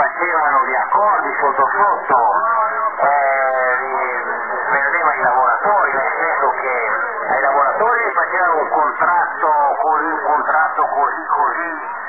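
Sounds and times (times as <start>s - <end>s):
voice over shortwave radio: 0.0s - 12.0s.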